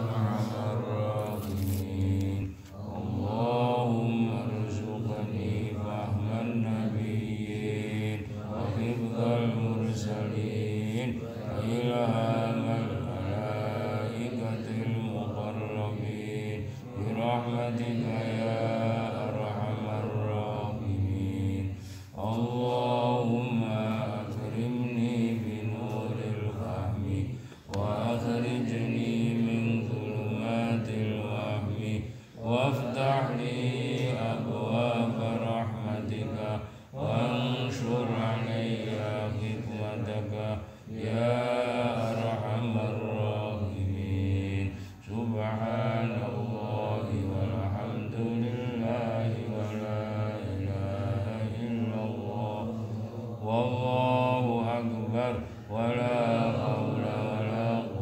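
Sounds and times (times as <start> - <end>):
melodic religious chanting: 0.0 - 58.0.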